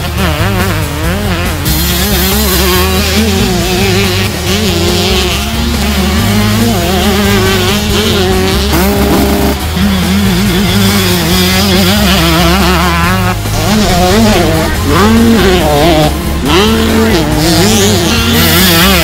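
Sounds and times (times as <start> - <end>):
motocross bike engines revving: 0.0 - 19.0
music with stepping bass line: 0.0 - 19.0.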